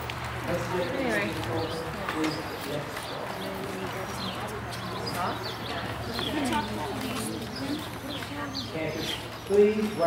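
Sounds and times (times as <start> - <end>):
horse hooves walking: 0.0 - 10.0
people talking: 0.5 - 10.0.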